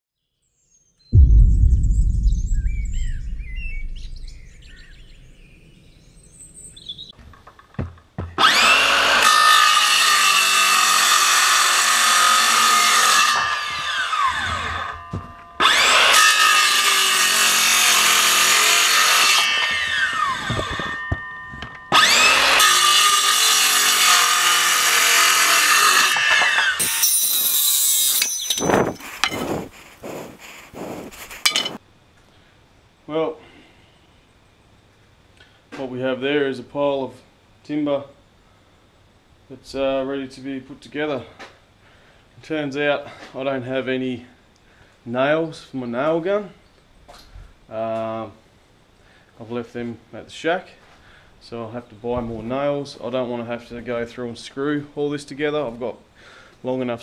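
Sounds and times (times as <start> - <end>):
deep boom: 1.1 - 6.1
circular saw cutting timber: 8.4 - 15.0, 15.6 - 21.1, 21.9 - 31.8.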